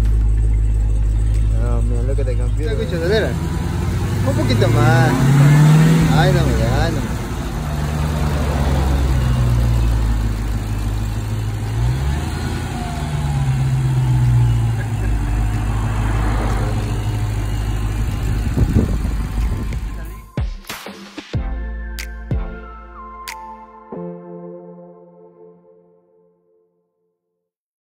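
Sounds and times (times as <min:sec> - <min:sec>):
car engine revving: 0:00.0 - 0:20.3.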